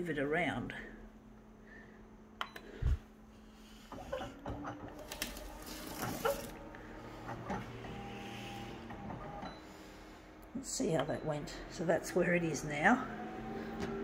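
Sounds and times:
scanner motor humming: 4.8 - 14.0.

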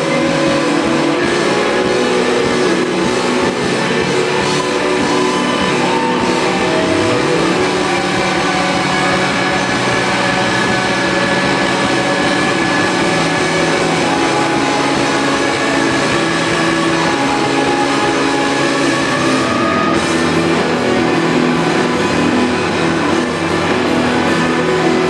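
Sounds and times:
rock band sustained drone: 0.0 - 25.0.

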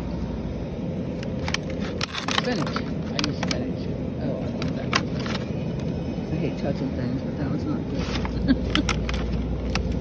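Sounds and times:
supermarket background rumble: 0.0 - 10.0.

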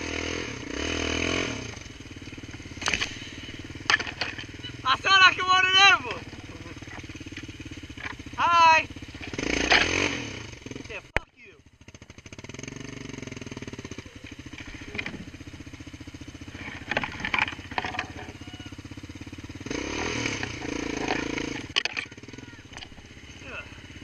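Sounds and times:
quad bike engine running: 0.0 - 24.0
high-pitched voice calling out: 22.0 - 22.8.

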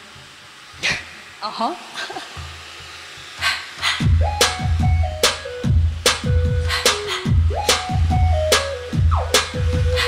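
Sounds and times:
stepped synth melody: 4.1 - 10.0.

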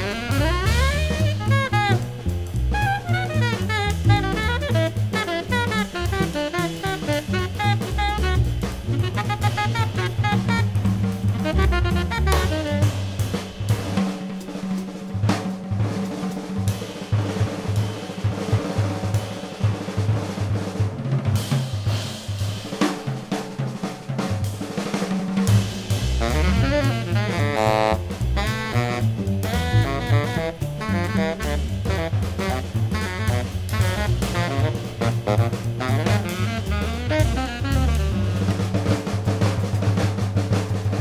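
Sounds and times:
saxophone playing: 0.0 - 13.4, 26.1 - 38.9
double bass line: 0.0 - 14.2, 25.6 - 41.0
drum kit playing: 0.0 - 41.0
jazz trio playing: 0.0 - 41.0.

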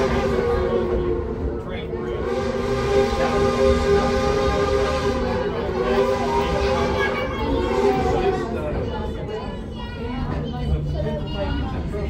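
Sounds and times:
train rumble inside passenger car: 0.0 - 12.0.

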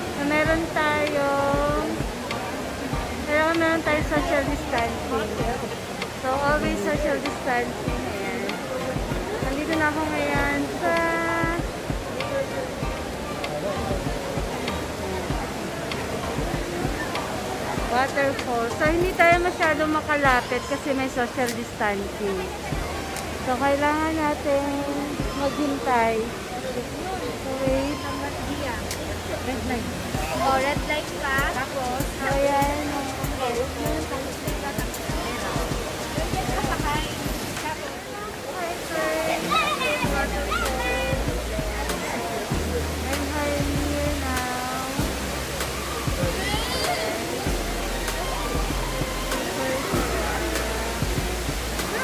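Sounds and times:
music: 0.0 - 37.9, 38.6 - 52.0
indoor waterfall rushing: 0.0 - 52.0
murmur of crowd voices: 0.0 - 52.0
regular low beat: 0.3 - 3.3, 6.4 - 8.1, 8.9 - 10.8, 11.4 - 20.5, 22.7 - 23.1, 30.0 - 37.6, 40.1 - 46.9, 47.5 - 52.0.

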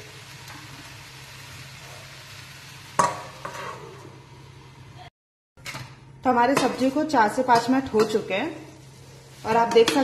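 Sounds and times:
vegetables sizzling in a frying pan: 0.0 - 5.1, 6.3 - 10.0.

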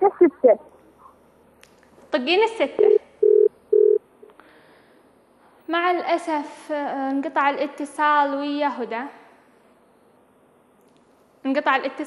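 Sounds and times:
telephone busy tone beeps: 2.8 - 4.0.

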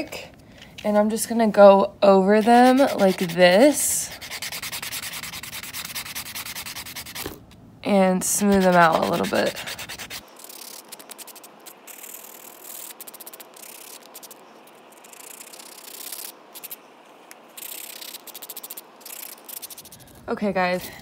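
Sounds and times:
sanding block buffing fingernails: 2.4 - 7.2, 8.3 - 14.4, 15.0 - 16.8, 17.6 - 20.0.

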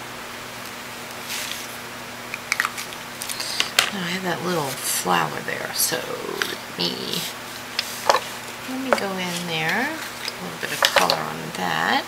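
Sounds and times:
small jars clicking: 8.9 - 11.3.

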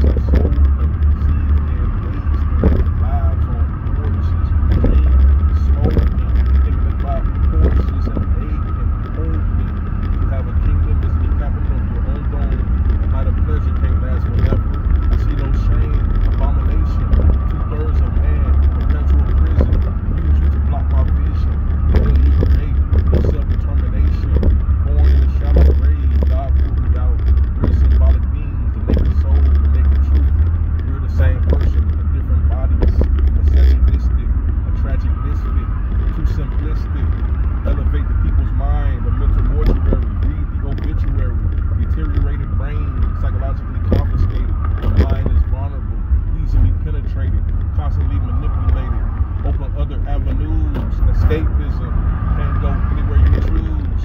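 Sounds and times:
car road and engine rumble: 0.0 - 54.0
man talking: 0.0 - 54.0.

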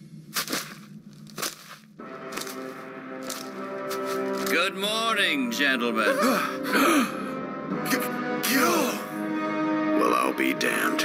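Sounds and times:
held music chord: 2.0 - 11.0.

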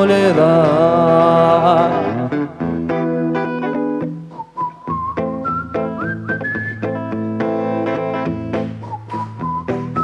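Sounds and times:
electric guitar strumming chords: 0.0 - 10.0
whistle-like melody line: 4.3 - 7.2, 8.7 - 10.0.

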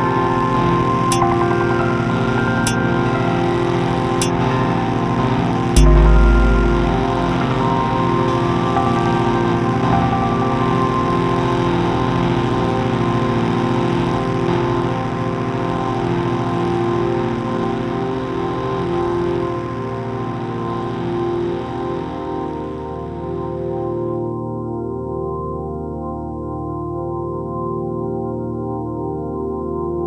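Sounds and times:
electronic synthesizer music: 0.2 - 13.9.

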